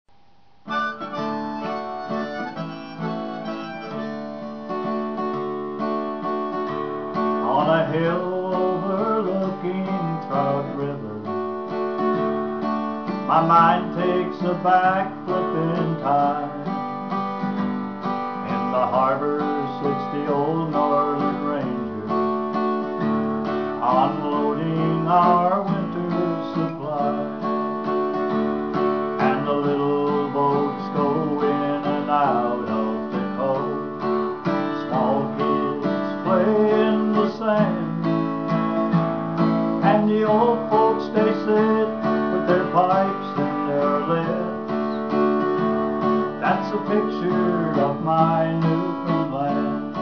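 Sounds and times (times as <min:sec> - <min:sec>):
strummed acoustic guitar: 0:00.6 - 0:50.0
man singing folk song: 0:00.7 - 0:50.0.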